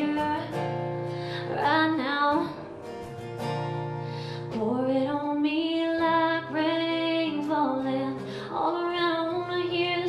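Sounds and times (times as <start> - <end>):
woman singing: 0.0 - 3.1, 4.3 - 10.0
acoustic guitar: 0.0 - 10.0.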